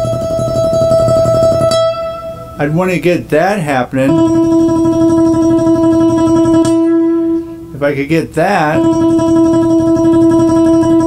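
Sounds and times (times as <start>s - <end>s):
tremolo-picked acoustic guitar: 0.0s - 11.0s.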